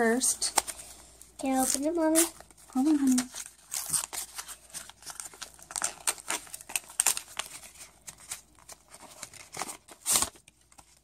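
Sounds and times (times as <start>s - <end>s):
gift wrapping crackling and rustling: 0.0s - 11.0s.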